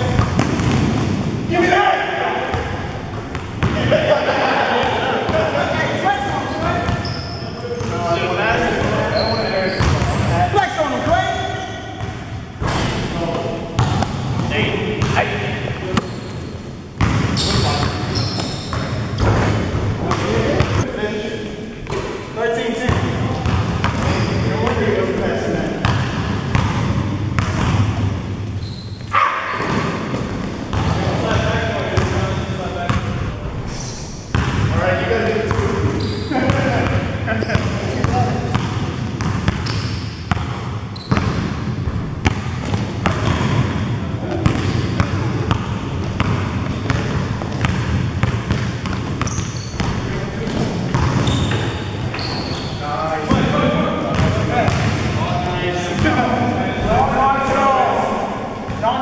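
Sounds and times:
players shouting and chatter: 0.0 - 40.0, 48.7 - 59.0
basketball dribbling on gym floor: 38.5 - 51.6.

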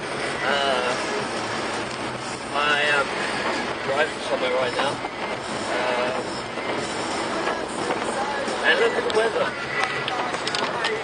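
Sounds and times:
road and tyre noise on wet road: 0.0 - 11.0.

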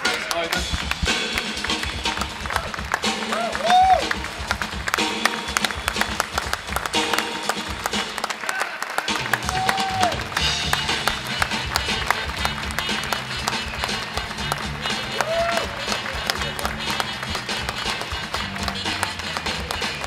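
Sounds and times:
audience applauding: 0.0 - 20.0
music playing: 0.0 - 20.0
vocal whoops: 3.2 - 4.2, 9.4 - 10.3, 15.1 - 15.8.

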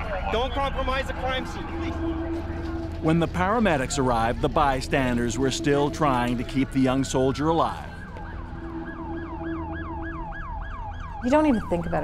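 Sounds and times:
steady low rumble: 0.0 - 12.0
siren yelping: 0.1 - 12.0.

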